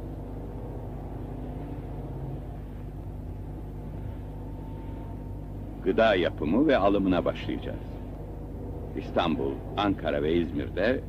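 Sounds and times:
low mechanical hum and rumble: 0.0s - 11.0s.

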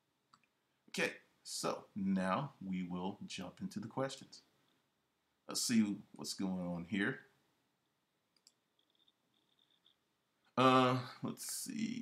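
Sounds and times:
computer mouse clicks: 8.3s - 10.0s
person speaking: 10.5s - 12.0s.

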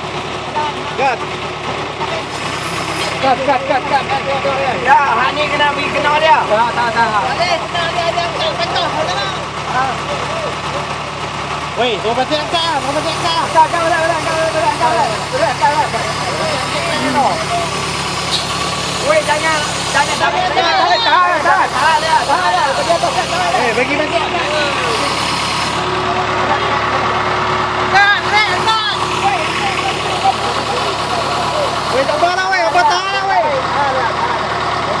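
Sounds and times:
diesel engine idling: 0.0s - 35.0s
men calling out: 12.2s - 35.0s.

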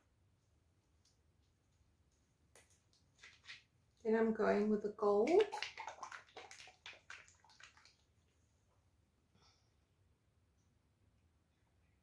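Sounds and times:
paint sloshing in bottle: 2.6s - 4.0s, 5.1s - 8.4s.

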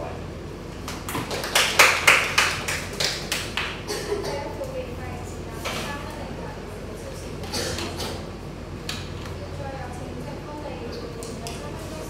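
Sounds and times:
audience clapping: 0.8s - 3.8s.

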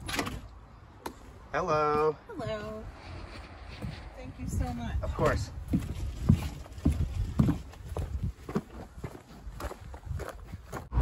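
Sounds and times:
footsteps walking: 2.9s - 11.0s
footsteps on gravel: 3.7s - 11.0s.

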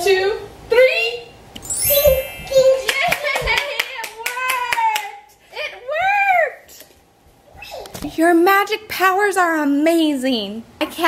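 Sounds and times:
hands clapping: 2.8s - 5.1s.

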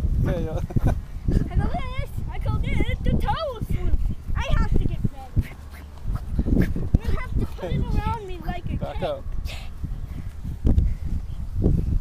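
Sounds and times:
children making wavering vocal sounds: 1.5s - 8.8s.

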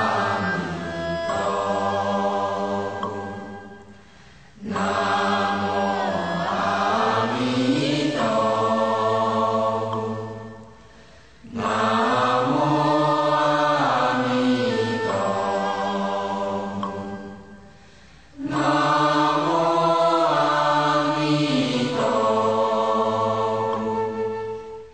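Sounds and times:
voices chanting in unison: 0.0s - 24.9s.

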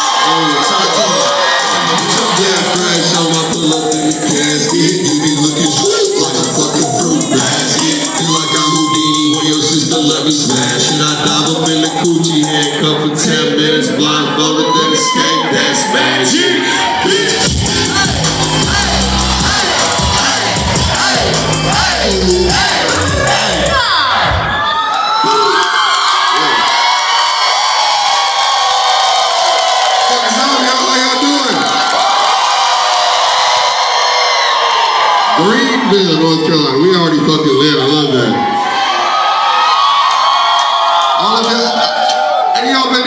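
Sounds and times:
crowd cheering: 0.0s - 43.0s
hip-hop beat over pa: 0.1s - 14.0s, 15.0s - 24.4s.

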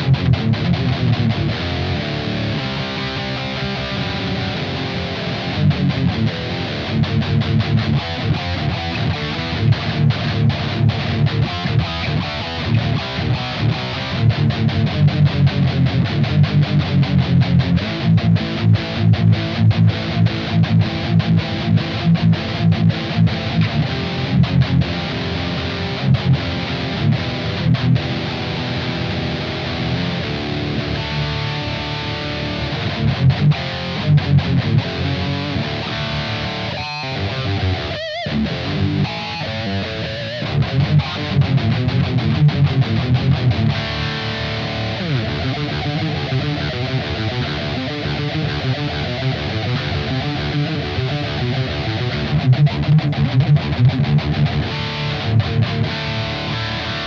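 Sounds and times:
distorted electric guitar riff: 0.0s - 57.0s.

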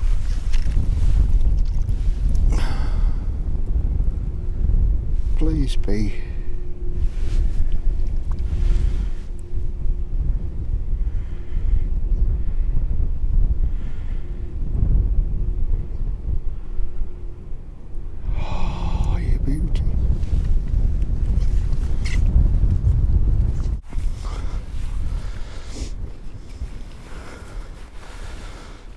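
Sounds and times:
wind buffeting microphone: 0.0s - 28.9s.

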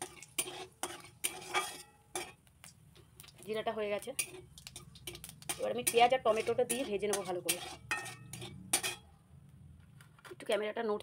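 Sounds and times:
metal spatula scraping a wok: 0.0s - 2.4s, 4.0s - 9.1s.

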